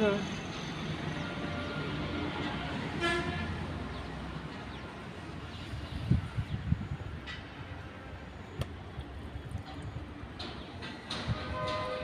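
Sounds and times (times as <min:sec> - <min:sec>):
vehicle horn honk: 0:11.5 - 0:12.0.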